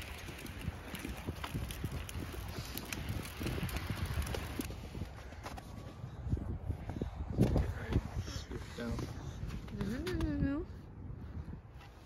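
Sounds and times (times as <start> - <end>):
stroller wheels rolling: 0.0 - 6.5
footsteps on paved path: 0.0 - 12.0
wind on microphone: 0.0 - 12.0.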